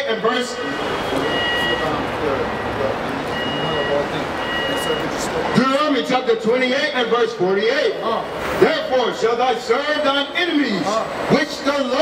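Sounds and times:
city street traffic: 0.0 - 12.0.

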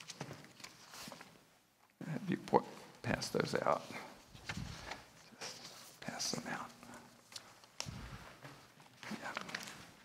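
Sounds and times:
people whispering: 2.0 - 8.4, 9.0 - 10.0.

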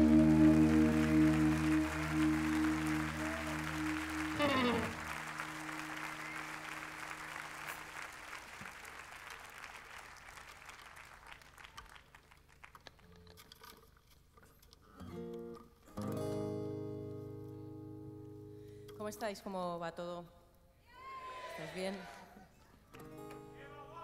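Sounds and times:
acoustic guitar chords: 0.0 - 7.8, 15.0 - 19.0
audience applause: 0.0 - 13.0.

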